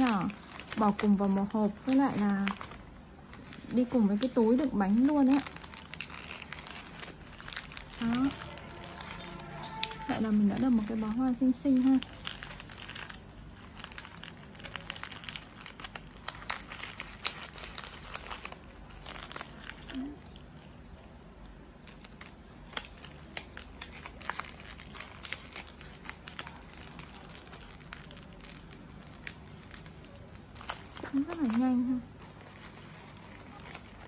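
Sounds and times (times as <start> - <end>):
wrapping paper crinkling: 0.0 - 34.0.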